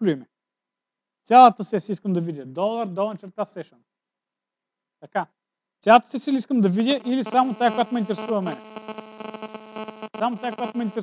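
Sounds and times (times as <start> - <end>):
person speaking: 6.0 - 8.7, 10.2 - 11.0
electrical hum: 6.8 - 11.0.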